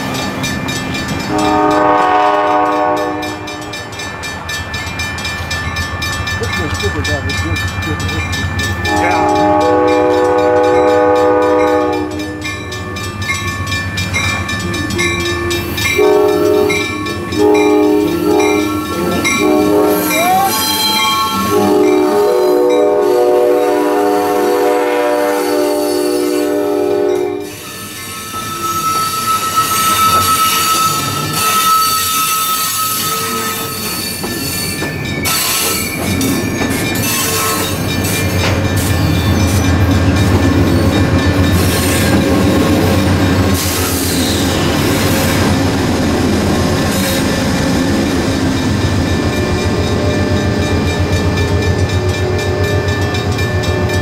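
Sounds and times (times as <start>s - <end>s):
locomotive engine rumble: 0.0s - 23.6s
train horn blasts: 1.3s - 3.8s, 8.8s - 12.5s, 14.6s - 27.6s
high wheel squeal: 27.4s - 39.6s.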